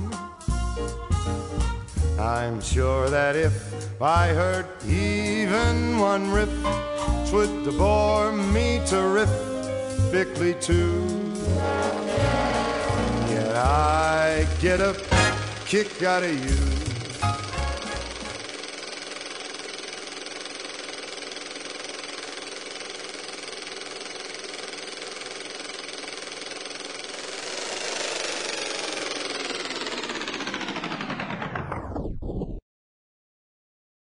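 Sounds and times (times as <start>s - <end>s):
film projector whirring: 3.1s - 31.9s
band playing last note: 9.5s - 15.8s.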